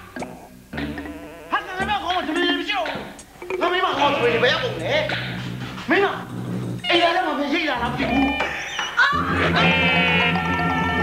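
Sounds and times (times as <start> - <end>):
person wailing and crying out: 8.0 - 11.0.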